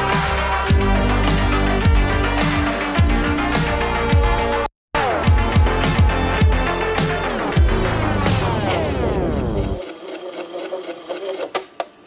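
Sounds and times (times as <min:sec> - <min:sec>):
electronic dance music: 0:00.0 - 0:11.4
synth sweeping down in pitch: 0:07.2 - 0:09.8.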